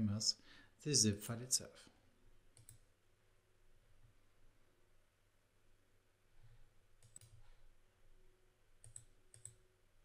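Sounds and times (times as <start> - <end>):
faint computer mouse clicks: 2.5 - 2.9, 7.0 - 7.6, 8.8 - 9.6.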